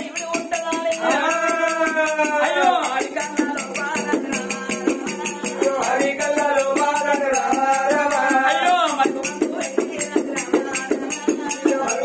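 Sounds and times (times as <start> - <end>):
jingling frame drum: 0.0 - 12.0
men singing: 0.0 - 12.0.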